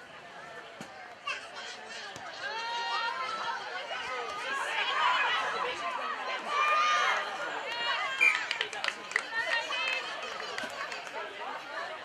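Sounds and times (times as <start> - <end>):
spectators shouting: 1.8 - 8.6.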